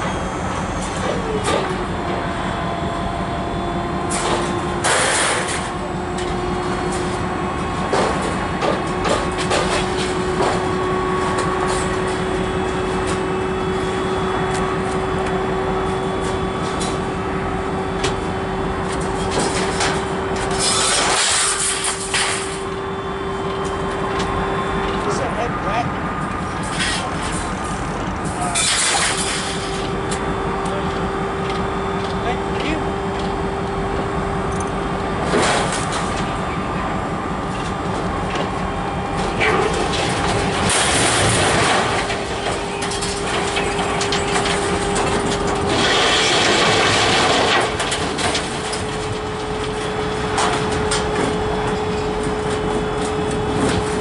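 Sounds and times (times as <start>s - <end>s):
hydraulic pump whining: 0.0s - 46.3s
steady running rumble: 0.0s - 54.0s.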